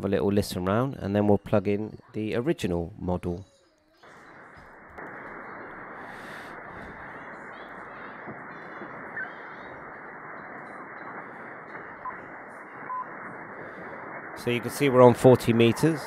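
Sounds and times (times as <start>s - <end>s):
radio static hiss: 3.9s - 16.0s
faint radio whistles: 4.0s - 16.0s.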